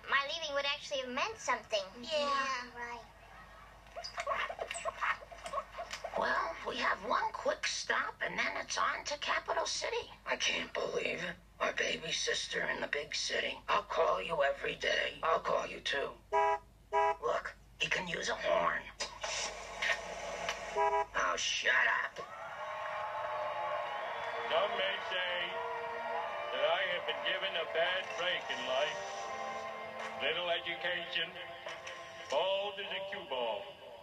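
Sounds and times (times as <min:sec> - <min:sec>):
car horn honking: 0:16.4 - 0:17.2, 0:20.7 - 0:21.2.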